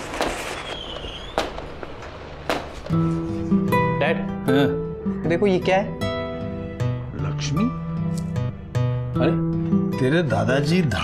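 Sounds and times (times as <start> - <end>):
firecracker bangs: 0.0 - 3.3.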